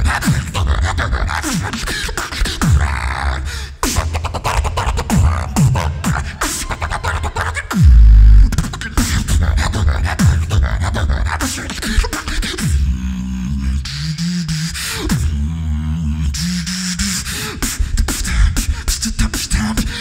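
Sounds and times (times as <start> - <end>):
beatboxing: 0.0 - 20.0
deep bass blast: 3.9 - 11.4.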